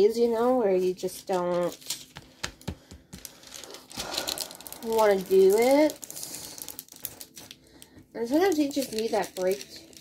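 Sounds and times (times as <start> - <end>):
woman speaking: 0.0 - 1.8, 4.8 - 6.1, 8.2 - 9.9
plastic film clicking and crinkling: 0.0 - 10.0.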